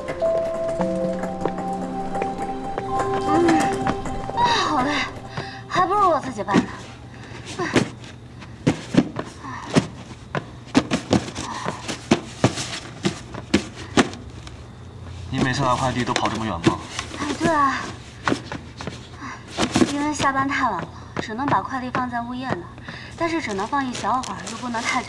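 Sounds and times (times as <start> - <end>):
music: 0.0 - 7.2
cardboard boxes thudding and knocking: 6.3 - 14.6, 15.3 - 25.0.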